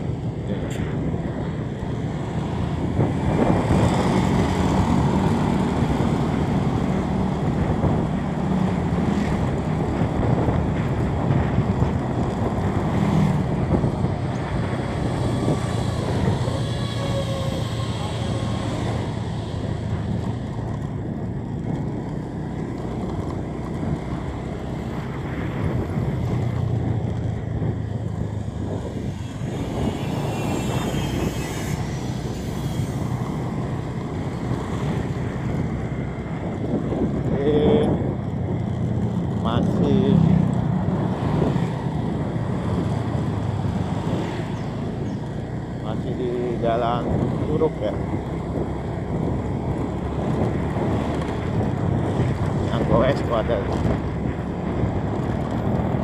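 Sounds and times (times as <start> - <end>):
passing traffic engine: 0.0 - 56.0
vehicle engine and road rumble: 0.0 - 56.0.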